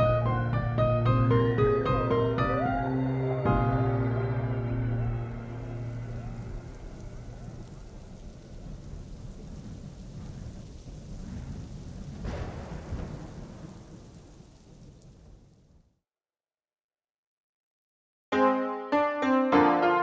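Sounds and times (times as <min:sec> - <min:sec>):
ambient soundtrack: 0:00.0 - 0:08.6, 0:18.3 - 0:20.0
low thunder-like rumble: 0:03.5 - 0:15.8
rain-like hiss: 0:04.7 - 0:15.8.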